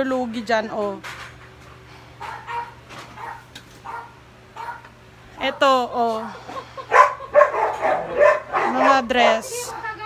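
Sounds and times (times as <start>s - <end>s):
faint dog barking: 2.2s - 4.9s, 6.9s - 10.0s.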